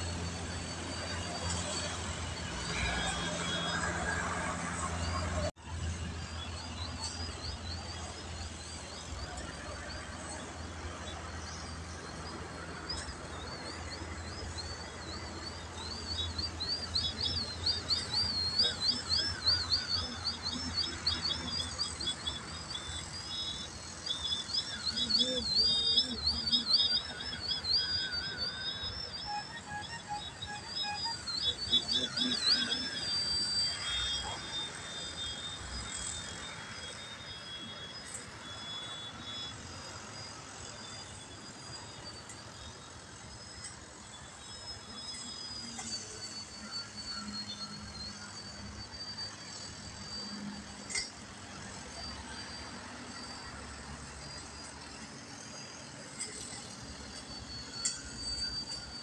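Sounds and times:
model plane motor whining: 0:07.0 - 0:59.0.

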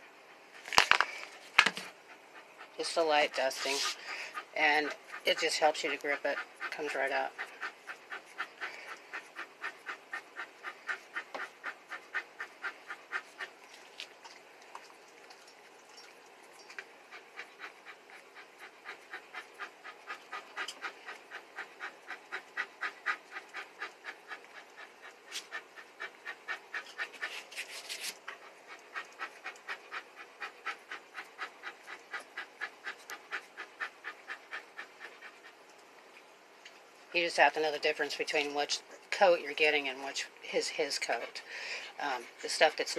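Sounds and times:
dog panting: 0:00.0 - 0:36.2, 0:37.1 - 0:42.9.

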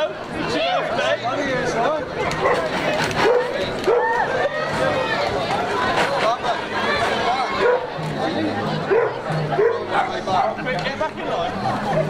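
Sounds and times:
crowd chatter: 0:00.0 - 0:12.0
dog barking and yapping: 0:02.4 - 0:04.2.

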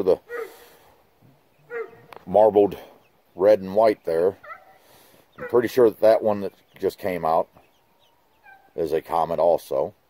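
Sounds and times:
high-pitched animal calls: 0:00.3 - 0:00.6, 0:01.6 - 0:02.2, 0:04.4 - 0:05.7, 0:07.8 - 0:08.8.

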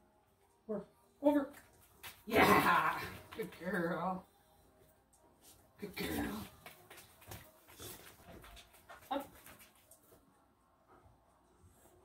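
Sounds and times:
woman speaking: 0:02.3 - 0:04.3, 0:05.8 - 0:06.5.

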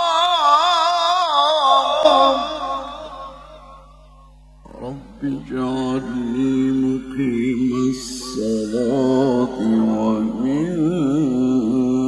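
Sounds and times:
man chanting through a microphone: 0:04.6 - 0:12.0.

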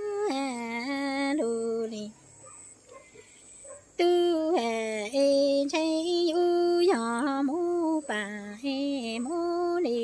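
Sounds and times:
woman singing: 0:00.0 - 0:02.2, 0:03.9 - 0:10.0.

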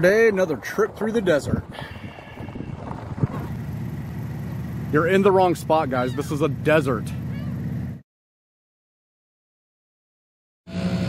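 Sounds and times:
car engine idling: 0:03.2 - 0:08.0.

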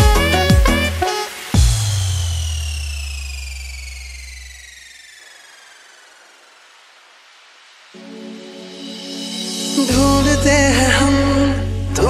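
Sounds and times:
deep sub-bass note: 0:01.6 - 0:04.6
high synth tone gliding downward: 0:01.6 - 0:12.0.

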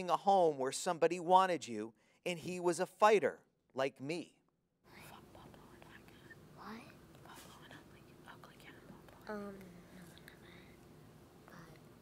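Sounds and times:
steady faint hum: 0:00.0 - 0:12.0.

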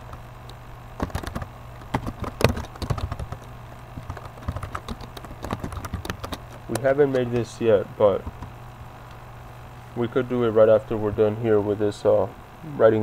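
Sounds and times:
low steady hum: 0:00.0 - 0:13.0
keyboard key clicks: 0:01.0 - 0:07.4.

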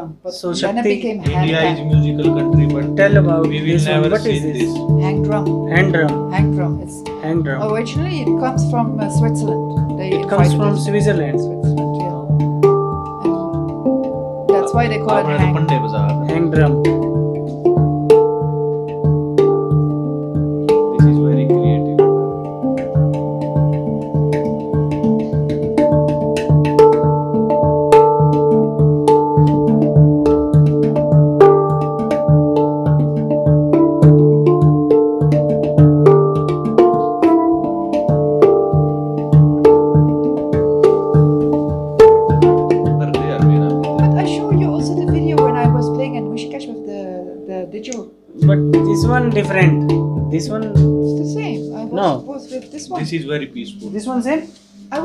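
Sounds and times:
handpan played by hand: 0:00.6 - 0:55.0.

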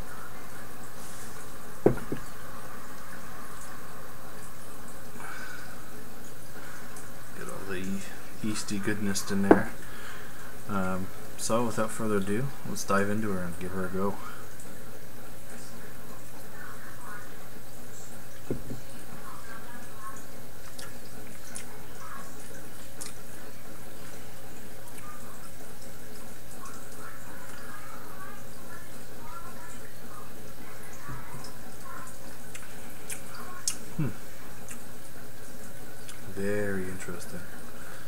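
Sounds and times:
steady background hum: 0:00.0 - 0:38.0
water trickling and dripping: 0:00.0 - 0:38.0.

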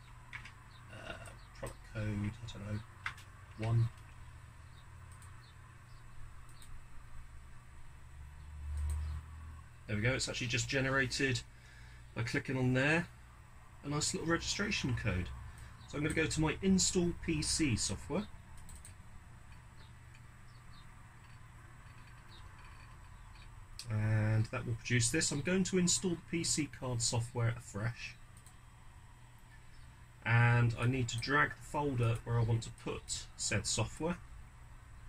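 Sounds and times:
steady low hum: 0:00.0 - 0:35.0
computer mouse clicks: 0:03.0 - 0:05.5, 0:06.4 - 0:06.8, 0:08.7 - 0:09.2, 0:18.6 - 0:20.2, 0:28.3 - 0:28.6
faint high ticks: 0:08.7 - 0:09.2.

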